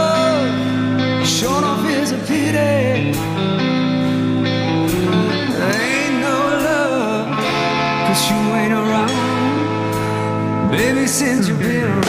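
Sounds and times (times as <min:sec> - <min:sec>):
person singing: 0:00.0 - 0:03.4, 0:05.0 - 0:12.0
electric guitar blues: 0:00.0 - 0:12.0.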